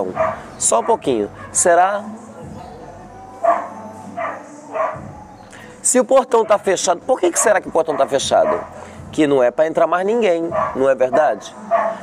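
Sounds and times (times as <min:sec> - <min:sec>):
dog yipping: 0:00.2 - 0:01.6, 0:03.4 - 0:05.0, 0:06.4 - 0:06.7, 0:07.4 - 0:08.8, 0:10.5 - 0:12.0.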